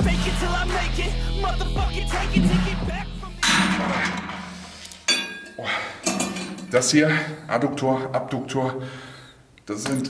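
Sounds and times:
background music: 0:00.0 - 0:05.0
gym weights clanking: 0:03.4 - 0:06.8.

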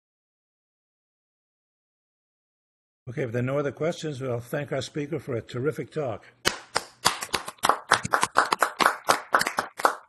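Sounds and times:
people clapping: 0:06.4 - 0:10.0.

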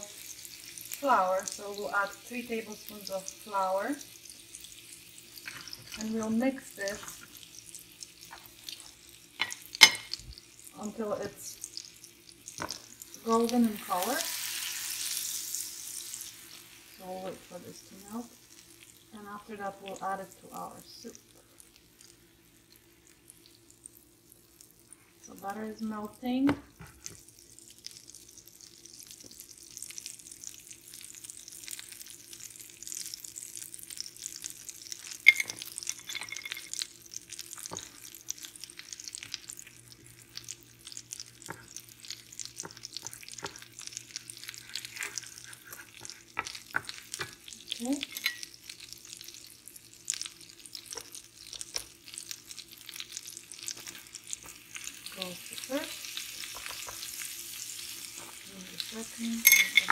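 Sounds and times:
butter sizzling in a frying pan: 0:00.0 - 0:59.9
wooden spoon stirring and scraping: 0:42.6 - 0:47.4.

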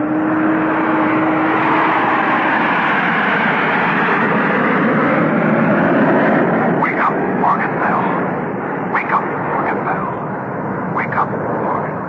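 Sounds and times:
airliner engines roaring: 0:00.0 - 0:12.0.

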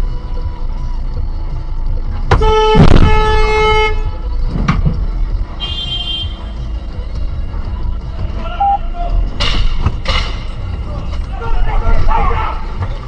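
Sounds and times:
street traffic rumble: 0:00.0 - 0:13.0
car horn blaring: 0:02.3 - 0:04.2, 0:05.5 - 0:06.6, 0:08.5 - 0:08.9
higher horn toot: 0:02.3 - 0:04.2, 0:05.6 - 0:06.6.

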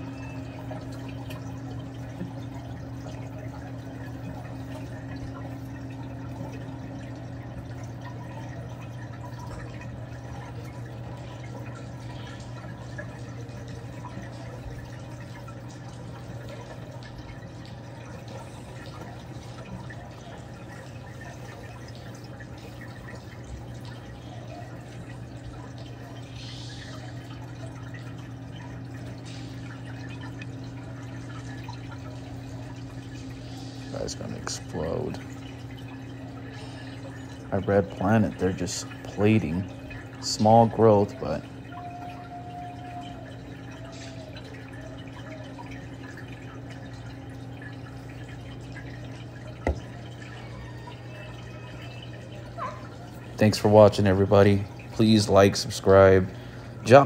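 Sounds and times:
faint water drips: 0:00.0 - 0:57.0
water trickling and splashing: 0:00.0 - 0:57.0.

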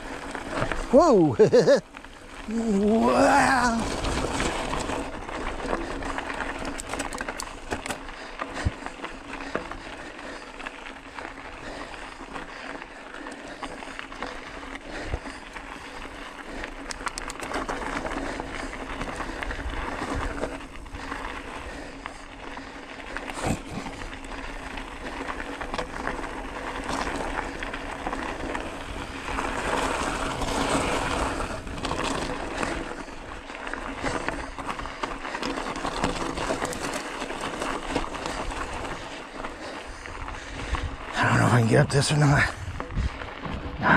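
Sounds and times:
bicycle tyres crunching on gravel: 0:00.0 - 0:43.9
bike rattling over bumps: 0:00.0 - 0:43.9.

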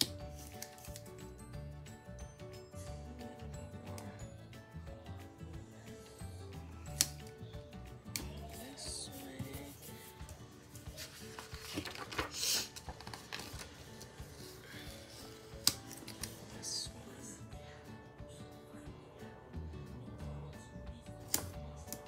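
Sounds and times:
background music: 0:00.0 - 0:22.0
paper page rustling: 0:00.3 - 0:01.1, 0:08.5 - 0:16.6
sticker backing rustling: 0:08.1 - 0:16.6.

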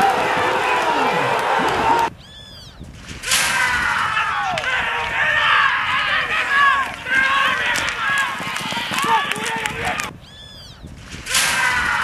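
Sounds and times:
horses galloping on dirt: 0:03.8 - 0:11.2.

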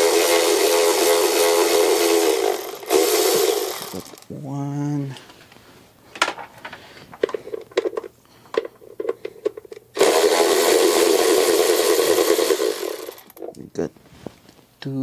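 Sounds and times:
electric ratchet spinning: 0:00.0 - 0:04.2, 0:10.0 - 0:13.4.

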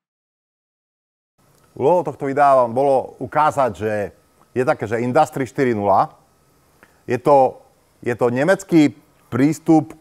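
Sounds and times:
man speaking: 0:01.8 - 0:06.2, 0:07.1 - 0:10.0.

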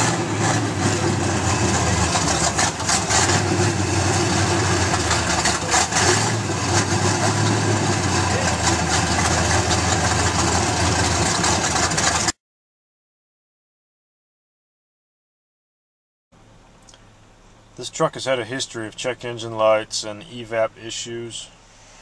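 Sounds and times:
engine idling: 0:00.0 - 0:12.3.

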